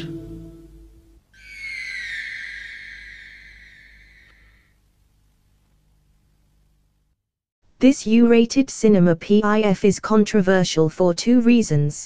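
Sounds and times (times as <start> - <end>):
whale whistling call: 1.4 - 4.8.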